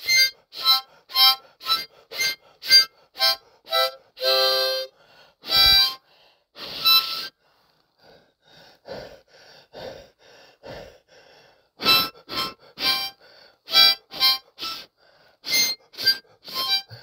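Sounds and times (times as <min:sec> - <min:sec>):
blues harmonica: 0:00.0 - 0:07.5, 0:11.8 - 0:17.0.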